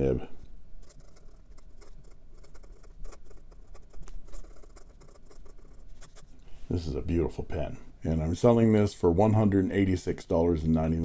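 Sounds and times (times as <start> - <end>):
pen nib scratching on paper: 0.8 - 6.4.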